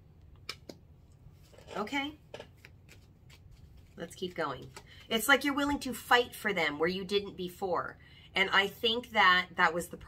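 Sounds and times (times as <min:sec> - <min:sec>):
cards snapping and tapping: 0:00.4 - 0:00.8, 0:02.3 - 0:03.5.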